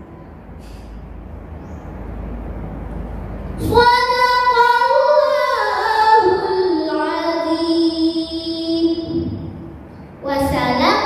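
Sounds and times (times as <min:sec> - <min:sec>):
girl chanting recitation: 0:03.6 - 0:11.0.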